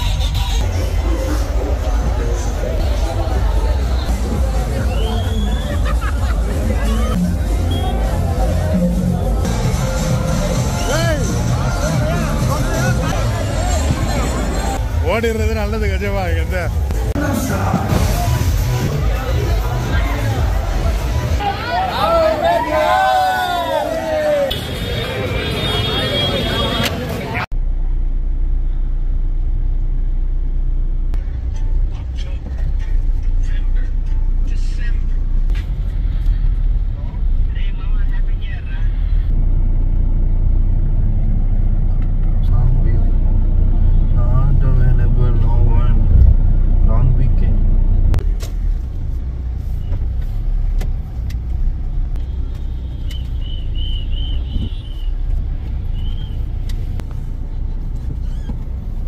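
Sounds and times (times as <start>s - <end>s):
car engine and road noise: 0.0s - 59.0s.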